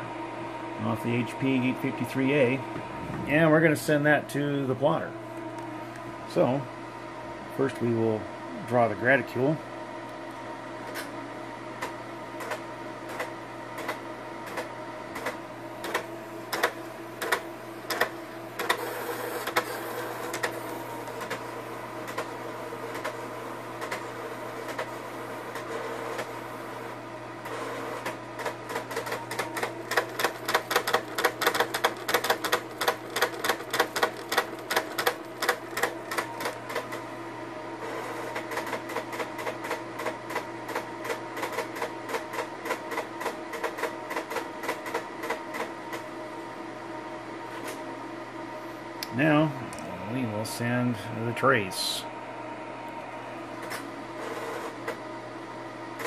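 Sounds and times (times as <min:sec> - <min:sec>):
plotter motors whining: 0:10.8 - 0:46.7.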